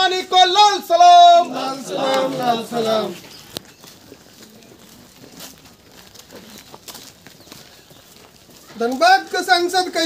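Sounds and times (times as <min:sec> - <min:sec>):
faint voices: 0:00.0 - 0:10.0
footsteps scuffing and tapping: 0:02.1 - 0:10.0.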